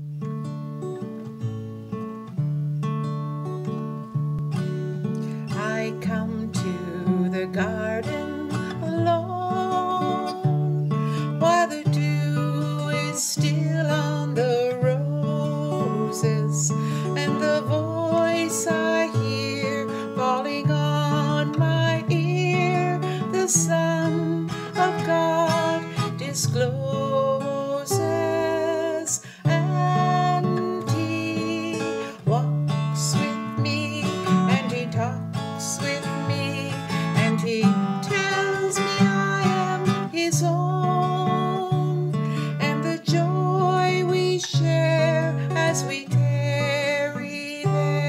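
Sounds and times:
acoustic guitar chords: 0.0s - 48.0s
woman singing: 5.1s - 48.0s.

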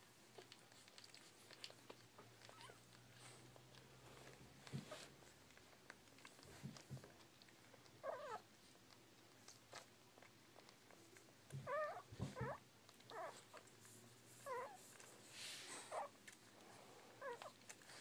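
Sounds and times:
puppies whimpering: 7.7s - 8.5s, 11.6s - 13.7s, 14.4s - 14.9s, 15.7s - 16.2s, 17.2s - 18.0s.

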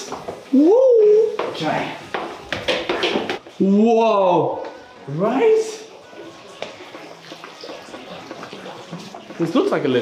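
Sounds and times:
fountain water splashing: 6.5s - 10.0s.

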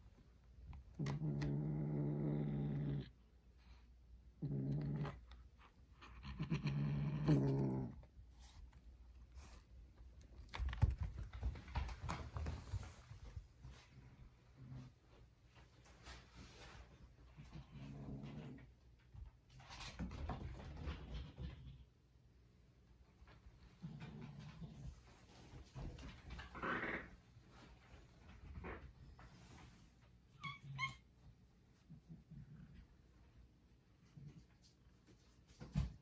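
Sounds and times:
kitten growling low: 0.9s - 3.2s, 4.4s - 8.5s, 26.4s - 27.2s.

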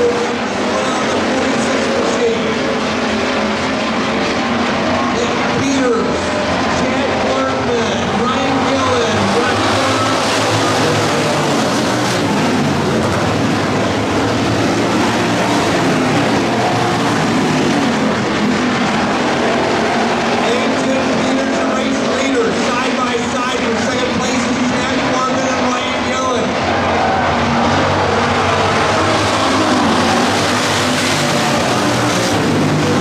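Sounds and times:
race car engines running hard: 0.0s - 33.0s.

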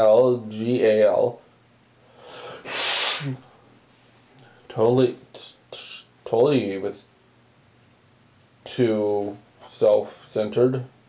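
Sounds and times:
man sneezing: 2.4s - 3.5s.

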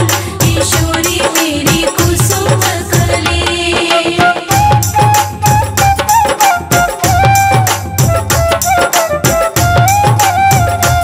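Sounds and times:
hand drum beat: 0.0s - 11.0s
held melody line: 3.9s - 11.0s.

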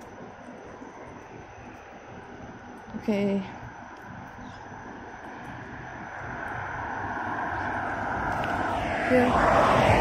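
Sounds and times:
road traffic passing: 3.7s - 10.0s.

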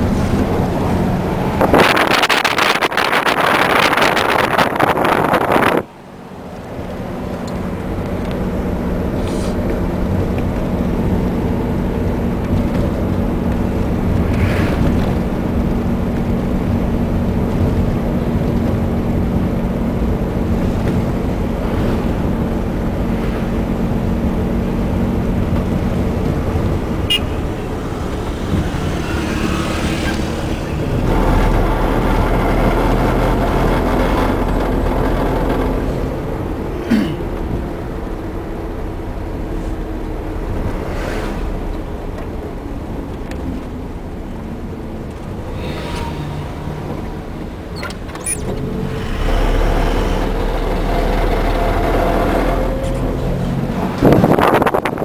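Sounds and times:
road noise: 0.0s - 55.0s.

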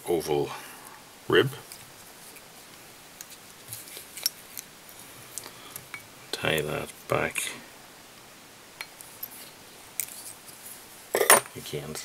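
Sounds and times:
fly tying handling sounds: 9.0s - 10.7s.

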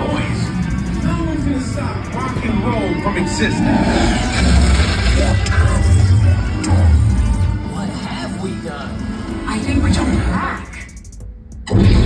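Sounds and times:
voices on a ride: 0.0s - 11.1s.

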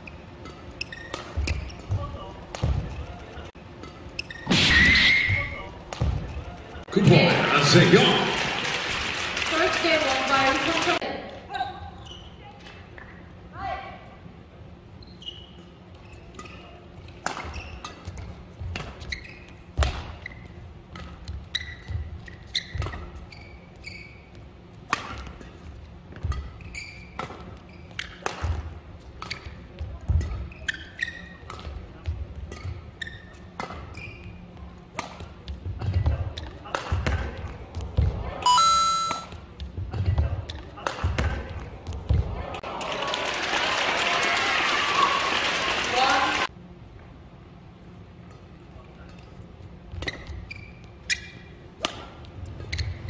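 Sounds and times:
shoes squeaking on court floor: 0.0s - 4.5s, 11.8s - 13.2s, 14.9s - 40.3s, 49.1s - 53.0s
racket hitting shuttlecock: 28.0s - 28.6s.

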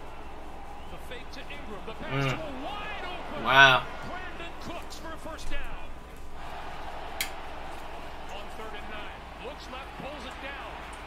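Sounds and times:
steady background noise: 0.0s - 11.0s
man talking: 0.9s - 6.0s, 8.3s - 10.8s.

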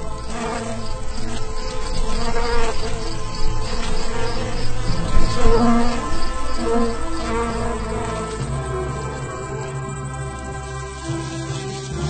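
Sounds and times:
insect wings buzzing: 0.0s - 12.0s.

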